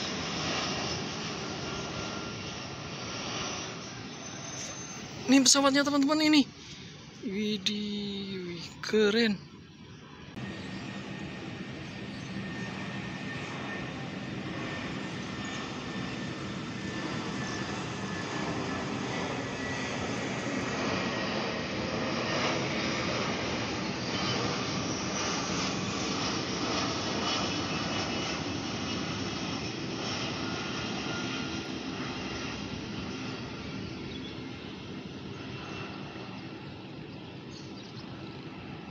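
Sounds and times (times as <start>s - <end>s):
jet airliner engine roar: 0.0s - 38.9s.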